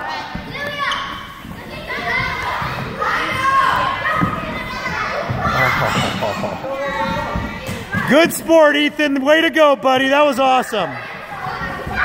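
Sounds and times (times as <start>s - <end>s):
children calling out and chattering: 0.0s - 8.3s, 10.4s - 12.0s.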